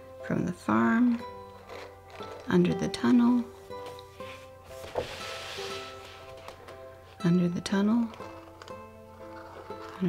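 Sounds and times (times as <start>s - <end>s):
light background music: 0.0s - 10.0s
toy train scraping on paper: 1.0s - 3.6s, 4.2s - 10.0s.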